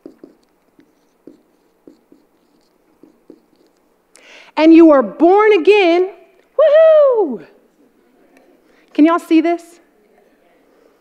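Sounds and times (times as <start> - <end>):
marker writing on whiteboard: 0.0 - 4.0.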